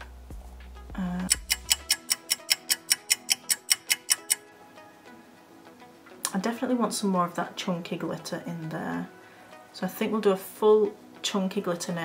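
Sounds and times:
soft background music: 0:00.0 - 0:12.0
fast clock ticking: 0:01.2 - 0:04.4.

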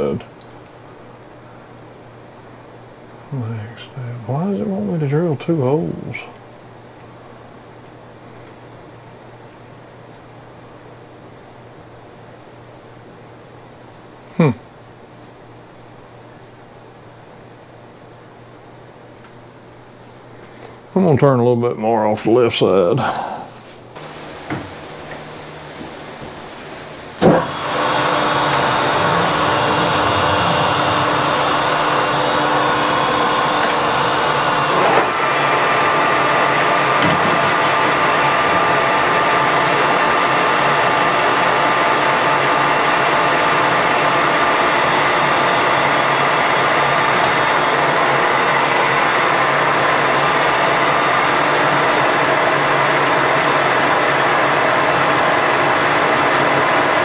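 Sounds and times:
metal lathe running: 0:26.5 - 0:57.0
lathe spindle clunk: 0:27.2 - 0:35.2.

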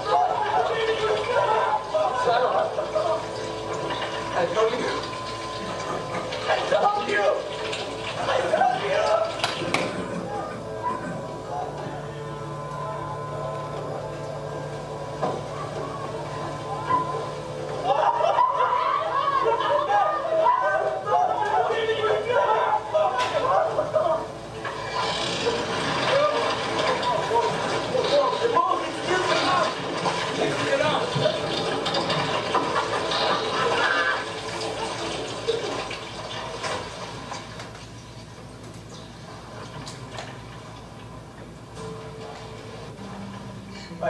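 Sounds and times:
actors' voices from tv: 0:00.0 - 0:37.4
water noise: 0:12.6 - 0:41.7.

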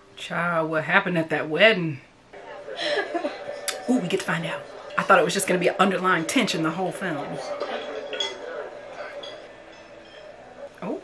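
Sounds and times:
murmur of voices: 0:02.3 - 0:11.0
glassware and dishes clinking: 0:03.3 - 0:11.0.

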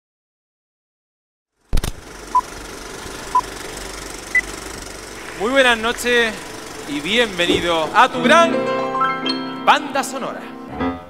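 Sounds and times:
film projector rattling: 0:01.6 - 0:08.4.

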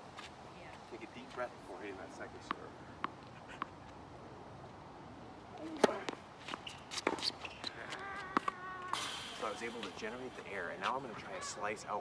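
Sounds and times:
tennis racket striking ball: 0:05.6 - 0:06.2
ball knocks in play: 0:05.7 - 0:07.3.

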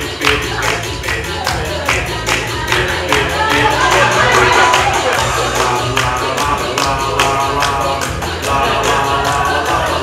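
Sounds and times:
loud dance music: 0:00.0 - 0:10.0.

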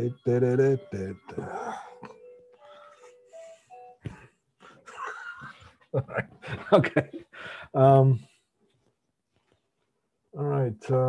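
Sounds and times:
phone ringtone: 0:00.0 - 0:04.0.

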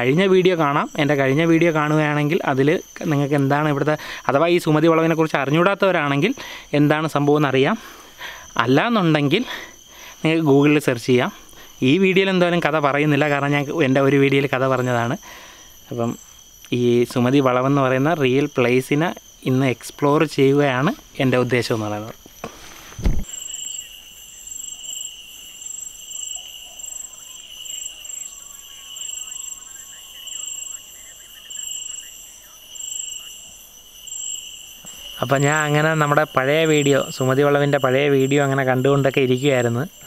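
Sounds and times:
man talking: 0:00.0 - 0:07.8, 0:10.2 - 0:15.2, 0:15.9 - 0:22.2, 0:35.2 - 0:40.0
night insects chirping: 0:00.0 - 0:40.0.

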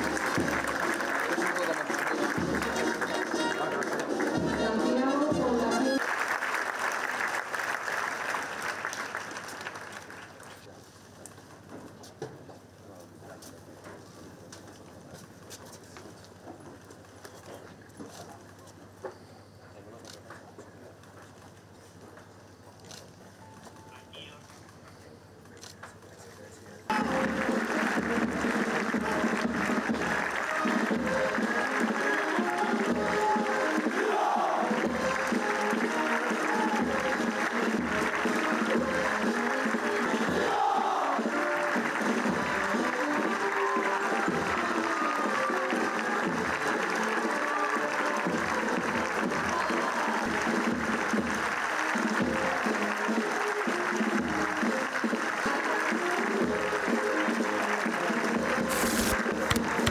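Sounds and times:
military band playing a march: 0:00.0 - 0:01.2, 0:02.2 - 0:06.0, 0:26.9 - 0:49.6, 0:50.2 - 0:59.9.

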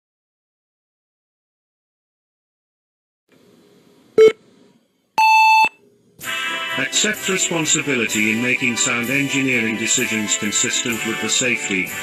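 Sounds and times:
electronic countdown beeps: 0:05.2 - 0:05.8.

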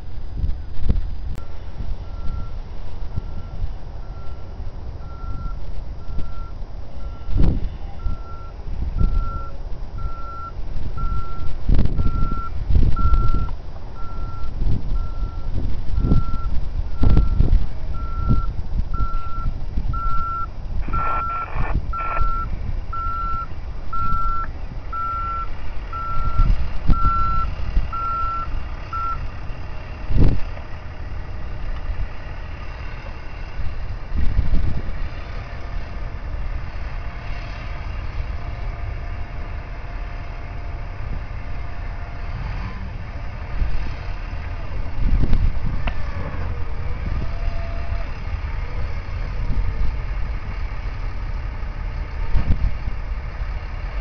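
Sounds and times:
low thumps and rumble: 0:00.0 - 0:04.3, 0:05.1 - 0:25.4, 0:42.7 - 0:47.4, 0:52.1 - 0:53.2
truck backup alarm beeping: 0:01.4 - 0:29.4.

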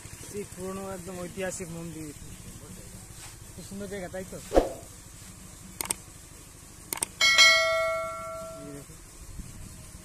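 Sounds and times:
bright bell ding: 0:07.2 - 0:08.7.

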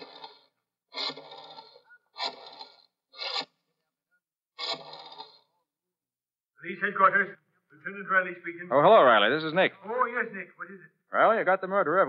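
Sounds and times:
rotary telephone dial whirring: 0:00.0 - 0:03.6, 0:04.6 - 0:05.5.

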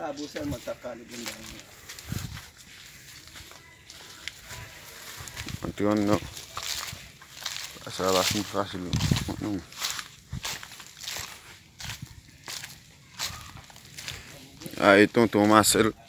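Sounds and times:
footsteps crunching dry leaves: 0:00.0 - 0:16.0
person speaking: 0:07.7 - 0:09.8.

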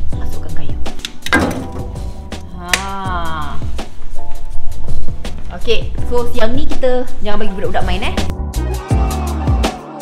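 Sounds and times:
background music with steady beat: 0:00.0 - 0:10.0.

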